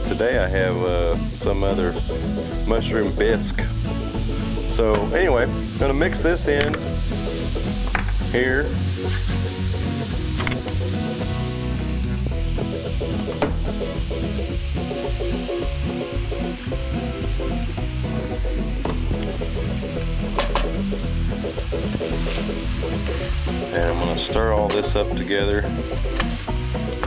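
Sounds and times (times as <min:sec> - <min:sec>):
background music: 0:00.0 - 0:27.0
meat sizzling in a skillet: 0:00.0 - 0:27.0.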